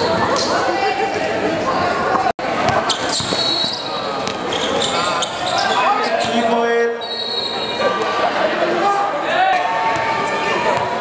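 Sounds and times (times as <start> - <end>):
echoing voices in hall: 0.0 - 11.0
sneakers squeaking: 2.6 - 7.9.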